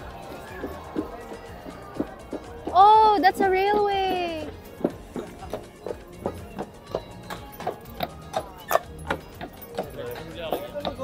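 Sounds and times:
horse hooves clip-clopping on paving: 0:00.0 - 0:11.0.

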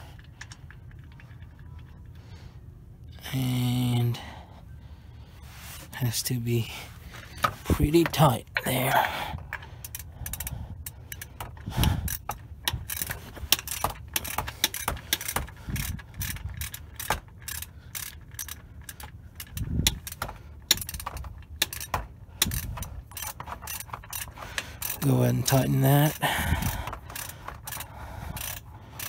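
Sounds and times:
socket ratchet clicking: 0:09.4 - 0:29.0.

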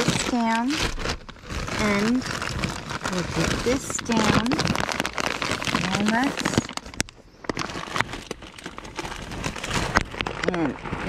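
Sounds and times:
plastic bags rustling: 0:00.0 - 0:11.0.

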